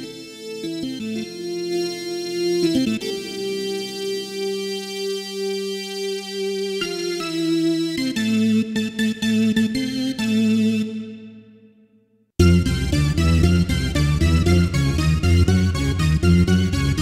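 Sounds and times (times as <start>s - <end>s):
combo organ playing held chords: 12.4s - 17.0s.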